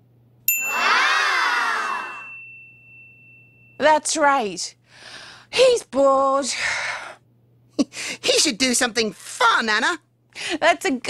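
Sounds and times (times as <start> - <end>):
chime-like ding: 0.5 - 4.0.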